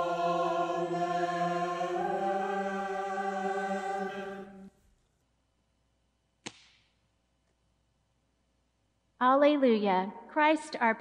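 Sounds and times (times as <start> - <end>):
wafer snapping: 6.4 - 6.9.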